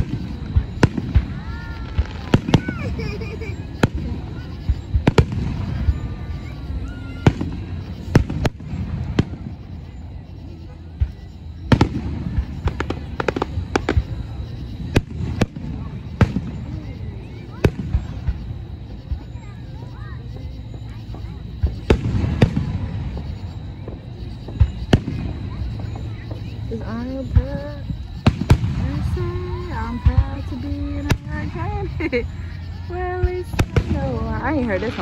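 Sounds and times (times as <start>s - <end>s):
fireworks bursting: 0.0s - 35.0s.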